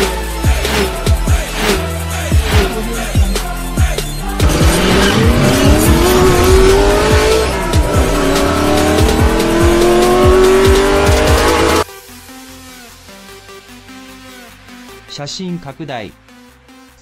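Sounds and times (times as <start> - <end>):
music with heavy bass-drum beat: 0.0 - 15.0
car engine revving: 0.6 - 3.4, 4.2 - 11.9.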